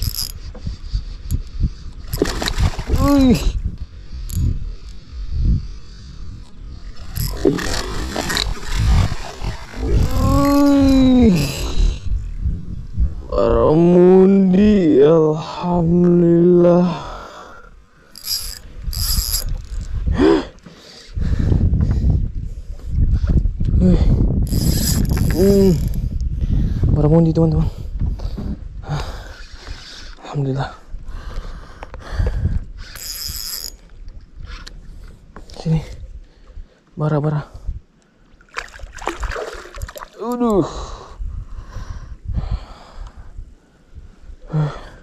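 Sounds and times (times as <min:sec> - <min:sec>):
fishing reel ratcheting: 0:00.0 - 0:00.6, 0:04.2 - 0:05.0, 0:06.4 - 0:11.6, 0:18.1 - 0:20.0, 0:24.4 - 0:26.1, 0:32.8 - 0:33.9
man groaning: 0:02.9 - 0:03.6, 0:09.8 - 0:11.8
fish splashing at water surface: 0:38.5 - 0:40.2.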